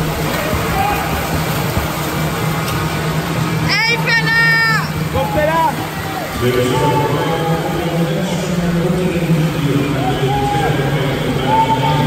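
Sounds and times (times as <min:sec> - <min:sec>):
crowd noise: 0:00.0 - 0:12.0
spectators cheering: 0:00.0 - 0:12.0
water splashing: 0:00.0 - 0:12.0.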